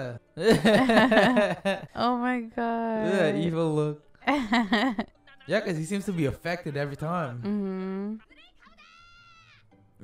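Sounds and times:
quiet background music: 0.0 - 10.0
person's drawn-out voice: 3.0 - 3.5.

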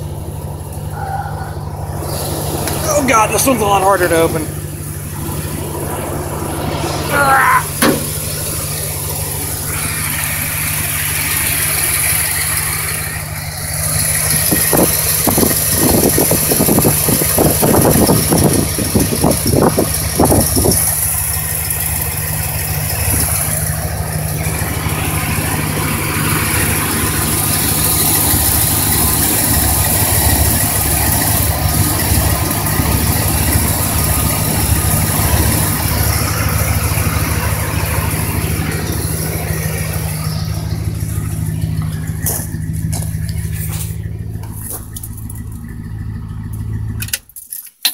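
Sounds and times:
engine idling: 0.0 - 47.9
irregular rattling and knocking: 7.8 - 9.0, 26.2 - 47.9.

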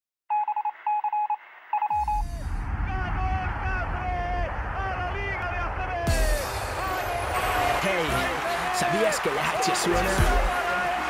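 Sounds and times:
electronic dialing beeps: 0.3 - 2.3
deep bass sweep: 2.0 - 8.5.

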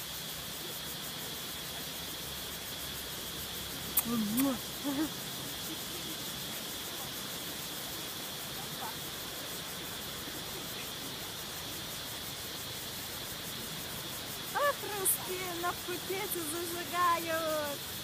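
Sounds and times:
distant surf hissing: 0.0 - 18.0.

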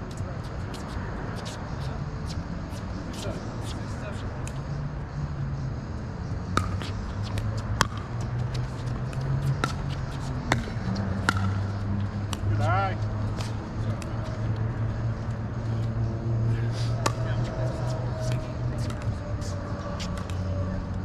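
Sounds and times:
low hum: 4.2 - 21.0.

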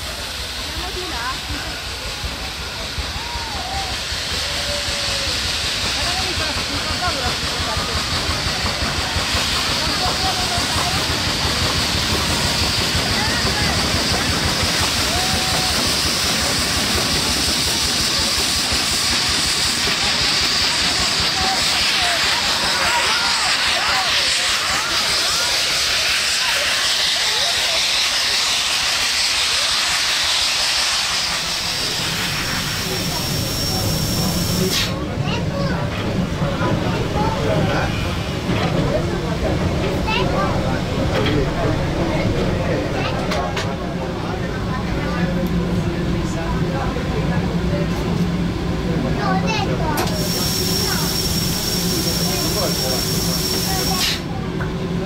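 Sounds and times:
faint voices: 0.0 - 55.0
steam locomotive hissing steam: 0.0 - 55.0.

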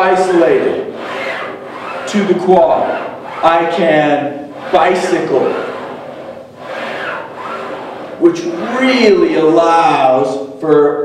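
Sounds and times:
cable rasping over pulley: 0.0 - 10.2.

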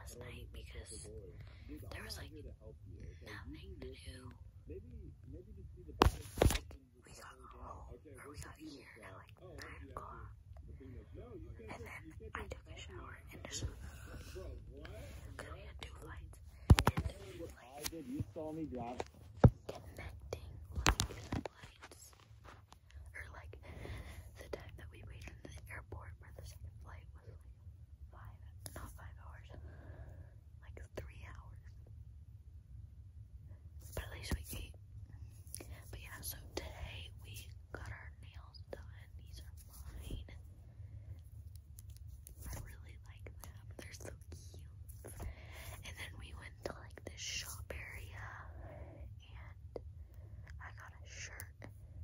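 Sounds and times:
girl whispering: 0.0 - 2.5, 3.2 - 4.4, 6.4 - 10.4, 11.6 - 22.2, 23.0 - 27.5, 28.1 - 29.6, 30.6 - 31.8, 33.9 - 34.8, 35.5 - 40.4, 42.4 - 49.8, 50.6 - 51.7
steady low hum: 0.0 - 52.0.

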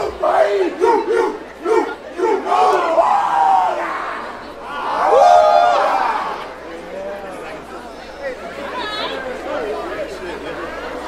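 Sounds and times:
group chanting rhythmic shouts: 0.0 - 6.4.

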